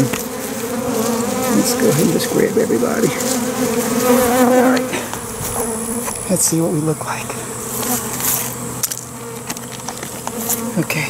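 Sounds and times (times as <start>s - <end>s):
bee swarm buzzing: 0.0s - 11.0s.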